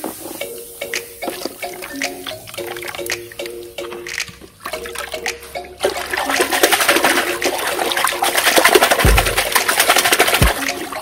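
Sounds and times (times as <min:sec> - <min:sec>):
soft drink fizzing: 0:00.0 - 0:11.0.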